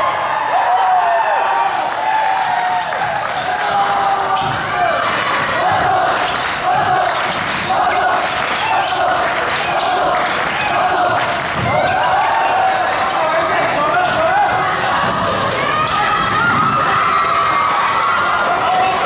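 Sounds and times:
spectators' voices: 0:00.0 - 0:19.0.

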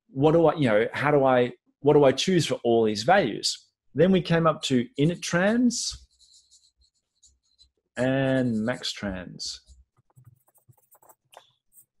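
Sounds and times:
marker pen scratching on paper: 0:04.9 - 0:12.0.

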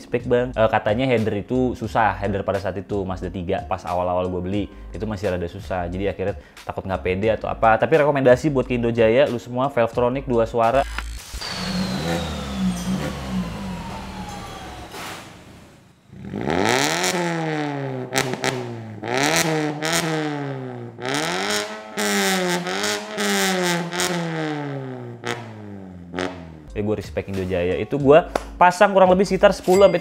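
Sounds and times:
car engine idling and revving: 0:10.7 - 0:26.8.

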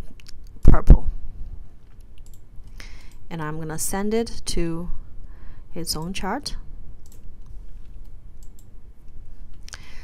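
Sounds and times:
computer mouse clicks: 0:01.8 - 0:03.2, 0:07.0 - 0:08.7.

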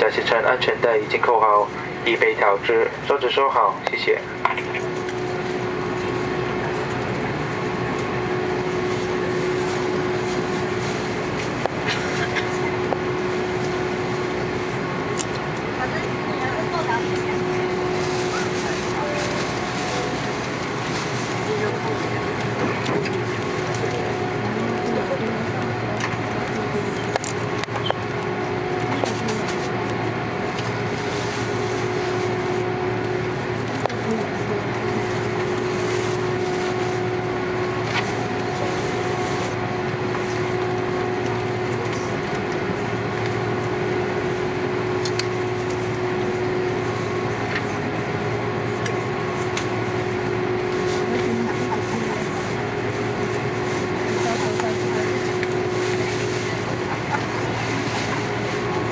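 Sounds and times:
jet engine noise in cabin: 0:00.0 - 0:58.9.

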